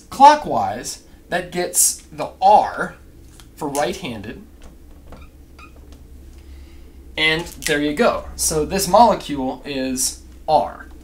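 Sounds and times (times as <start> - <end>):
marker squeaking on whiteboard: 5.0 - 6.0.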